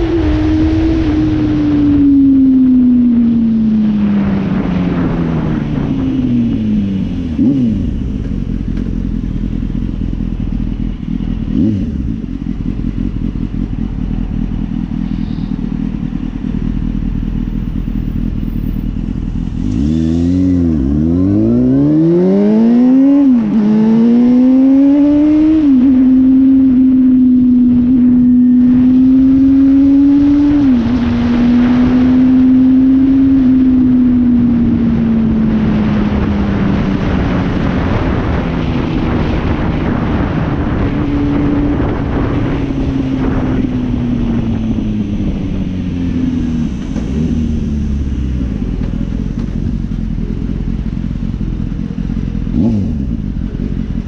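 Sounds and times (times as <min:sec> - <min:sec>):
motorcycle engine revving: 0:00.0 - 0:54.0
road and wind noise: 0:00.0 - 0:54.0.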